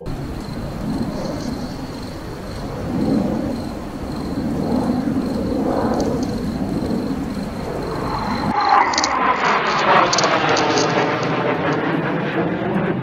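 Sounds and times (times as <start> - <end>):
jet airliner roar: 0.0 - 13.0.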